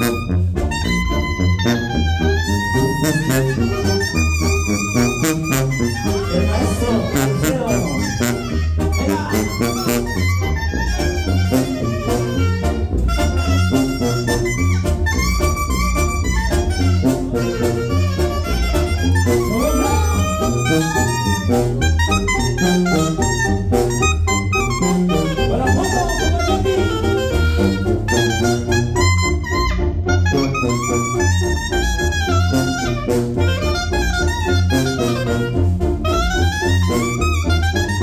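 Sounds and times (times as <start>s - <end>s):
clarinets playing melody: 0.0s - 38.0s
low bass line: 0.0s - 38.0s.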